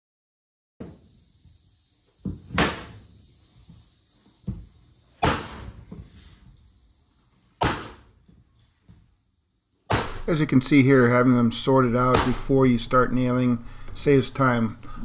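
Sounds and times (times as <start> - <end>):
mallet striking flooring nailer: 5.2 - 5.8, 7.6 - 8.1, 9.9 - 10.3, 12.1 - 12.6.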